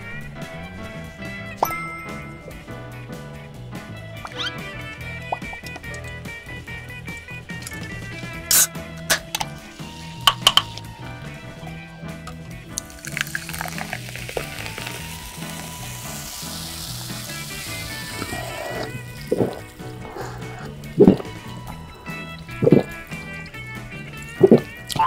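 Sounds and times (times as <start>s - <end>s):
background music: 0.0s - 25.0s
cola pouring and fizzing: 12.2s - 23.6s
loud gulps: 17.6s - 25.0s.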